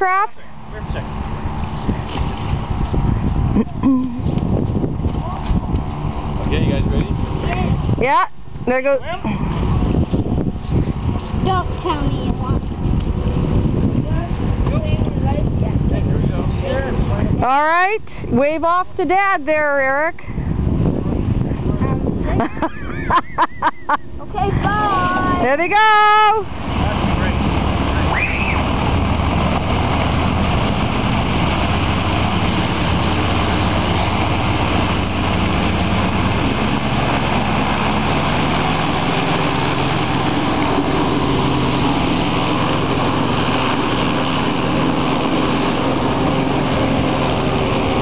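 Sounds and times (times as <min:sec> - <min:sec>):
hovercraft engine and propeller: 0:00.0 - 0:48.0.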